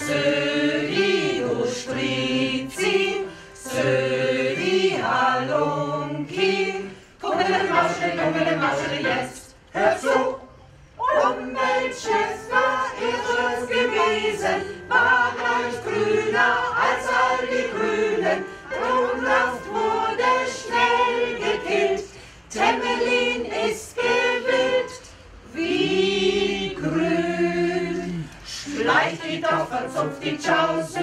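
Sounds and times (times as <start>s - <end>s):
choir singing a cappella: 0.0s - 31.0s.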